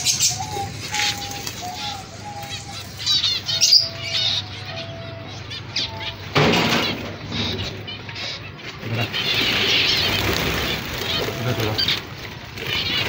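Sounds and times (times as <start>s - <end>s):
finches chirping: 0.0s - 6.4s, 7.0s - 13.0s
wings fluttering: 8.8s - 13.0s.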